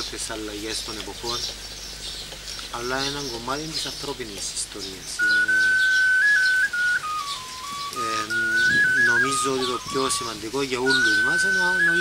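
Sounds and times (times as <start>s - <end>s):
slow whistle-like tune: 5.2s - 12.0s.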